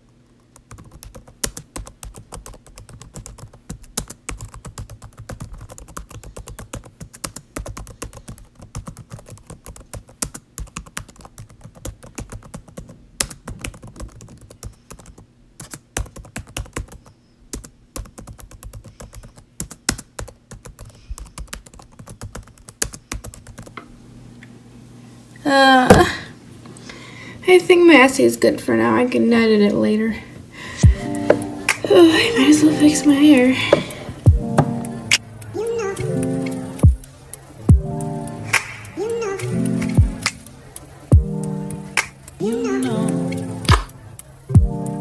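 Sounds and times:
typing on a keyboard: 0.0 - 23.8, 34.9 - 44.6.

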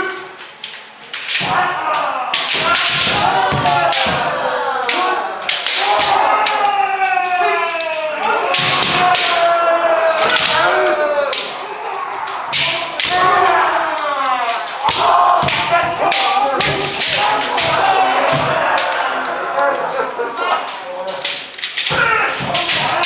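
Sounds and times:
people shouting: 0.0 - 23.0
bamboo swords striking armour: 1.2 - 6.4.

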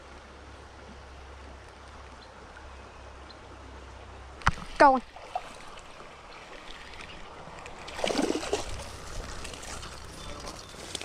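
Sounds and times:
creek water running: 0.0 - 11.0.

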